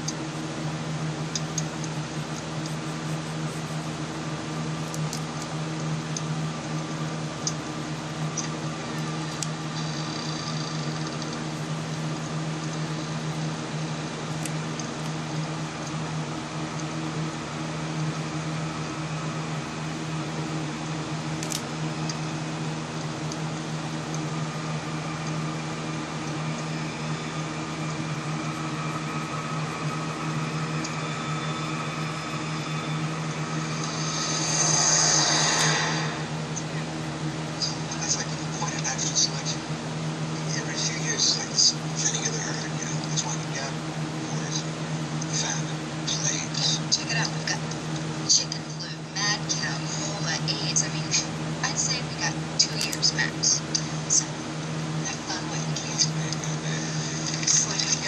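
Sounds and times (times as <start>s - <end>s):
small motor humming: 0.0s - 47.6s, 48.3s - 58.0s
loud hiss: 33.0s - 36.6s.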